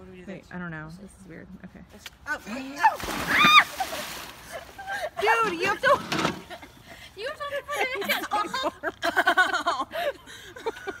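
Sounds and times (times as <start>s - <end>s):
people laughing and exclaiming: 2.8s - 11.0s.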